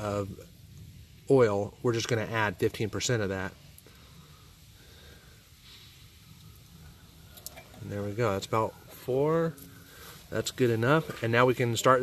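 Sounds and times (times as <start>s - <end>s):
soft hiss: 0.0s - 12.0s.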